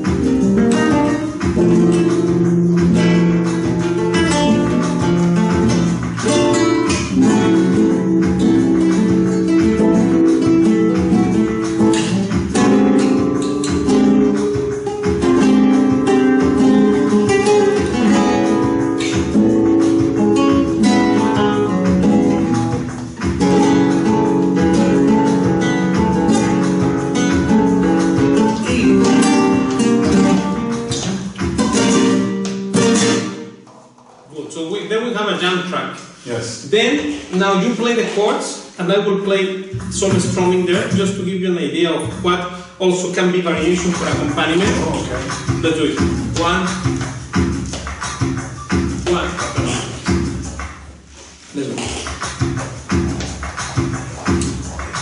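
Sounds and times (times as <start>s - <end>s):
flamenco guitars playing: 0.0s - 34.8s, 37.0s - 55.0s.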